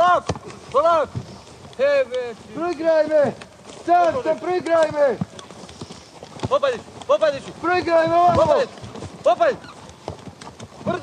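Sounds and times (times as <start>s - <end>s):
running footsteps on grass: 0.0s - 11.0s.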